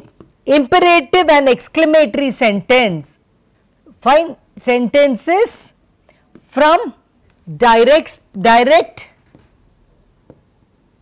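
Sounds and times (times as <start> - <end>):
pen scratching on board: 9.3 - 11.0.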